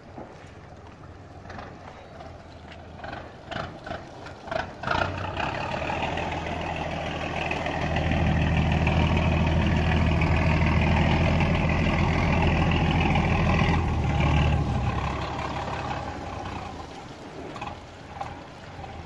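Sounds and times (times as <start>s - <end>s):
boat diesel engine droning: 0.1s - 19.0s.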